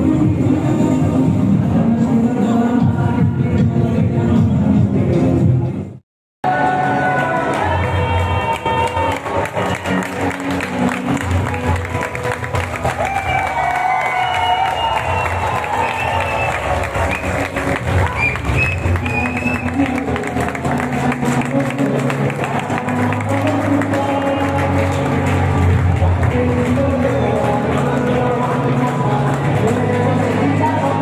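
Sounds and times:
crowd noise: 0.0 - 31.0
music over stadium speakers: 0.0 - 31.0
crowd clapping: 7.2 - 31.0.

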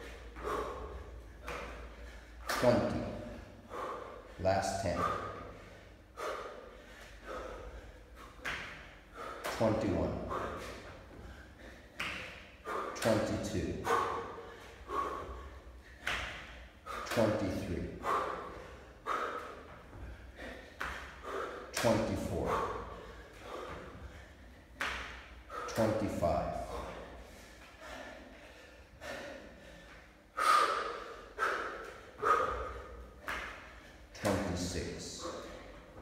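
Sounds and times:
man breathing hard: 0.0 - 36.0.

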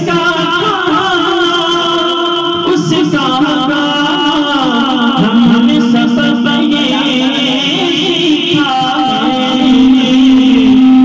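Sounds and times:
backing music: 0.0 - 11.0
man singing devotional song: 0.0 - 11.0.

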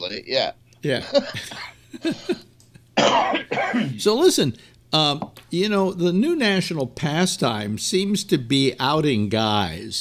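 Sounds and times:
man laughing: 0.9 - 2.5
man coughing harshly: 3.0 - 4.0.

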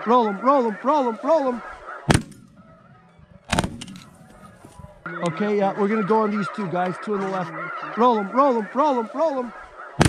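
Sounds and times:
shotgun shot: 2.1 - 2.6.

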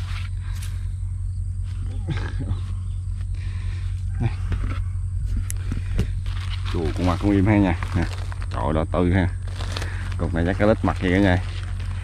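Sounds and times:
steady low hum: 0.0 - 12.0
plastic bag rustling: 5.6 - 12.0.

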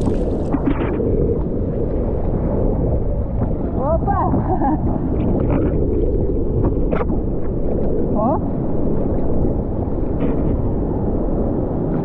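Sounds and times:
water rushing and splashing: 0.0 - 10.0
wind buffeting microphone: 0.0 - 12.0.

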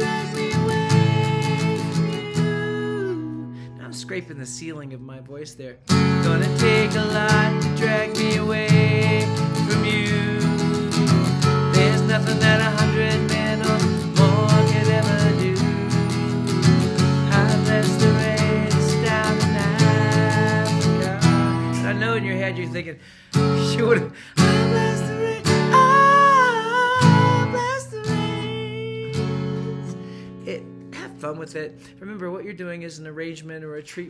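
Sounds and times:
acoustic guitar strumming: 0.0 - 4.3, 5.8 - 32.0
man singing: 0.0 - 32.4.

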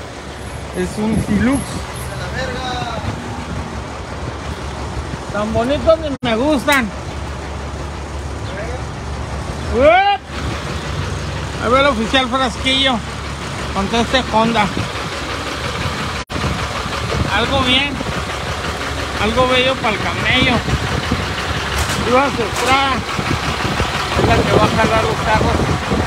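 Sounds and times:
street traffic rumble: 0.0 - 26.0
vehicle engines running: 0.0 - 26.0.

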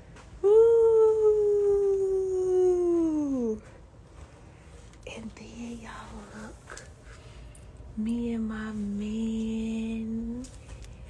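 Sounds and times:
quieter voice: 0.2 - 3.8, 5.0 - 7.0, 7.9 - 10.8.

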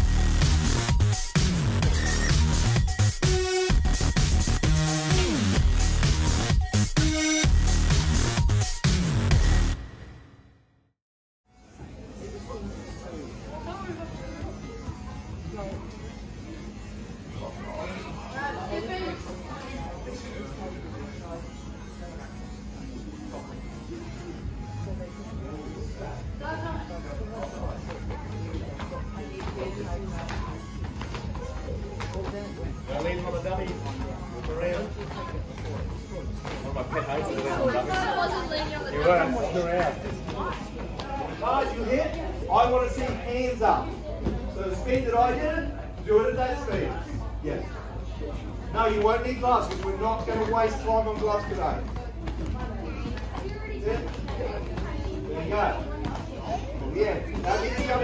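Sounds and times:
background music: 0.0 - 10.7
chatter of voices: 11.7 - 58.0
children chattering: 35.0 - 41.6, 50.1 - 58.0.

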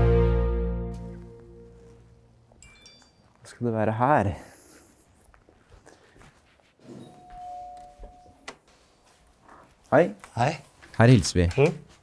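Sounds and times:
doorbell ding-dong chime: 7.2 - 8.4.

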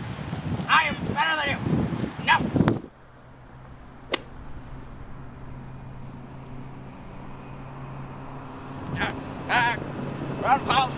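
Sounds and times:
steady low hum: 2.7 - 10.9
sharp smack: 4.0 - 4.6.

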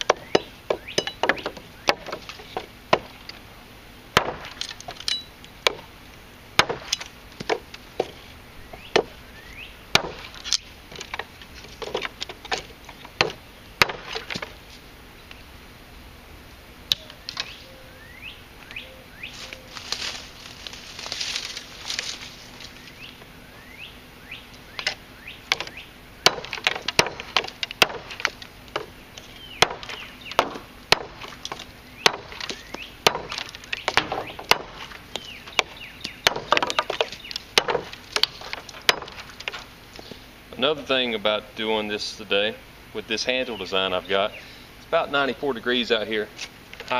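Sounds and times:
birds chirping: 0.0 - 46.9
knife chopping wooden sticks: 26.3 - 28.9, 29.6 - 39.7.

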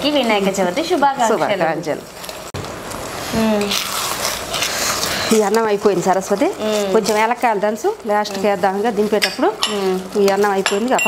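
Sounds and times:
people talking: 0.0 - 2.0, 3.3 - 3.8, 5.2 - 11.0.

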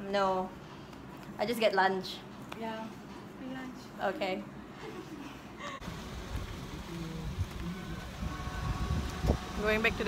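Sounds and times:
faint engine tones: 5.8 - 10.0
vehicle rumbling on road: 5.8 - 10.0.

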